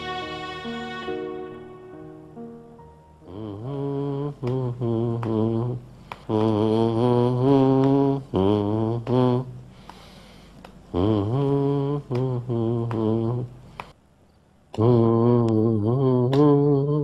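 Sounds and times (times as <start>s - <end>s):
soft instrumental note: 0.0s - 3.2s
low voice singing wordless chant: 3.2s - 9.7s, 10.9s - 13.7s, 14.7s - 17.0s.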